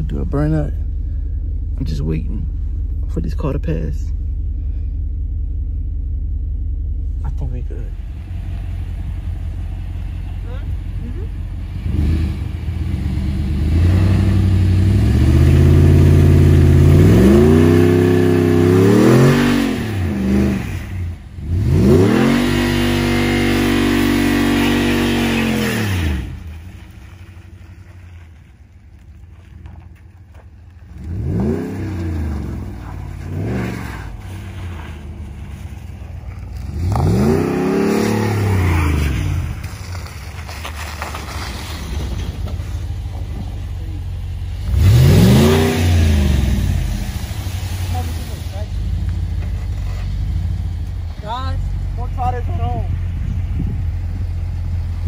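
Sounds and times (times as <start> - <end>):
engine idling: 0.0 - 19.2, 39.3 - 55.0
pickup engine revving: 0.0 - 55.0
wheels spinning on ice: 38.4 - 44.2.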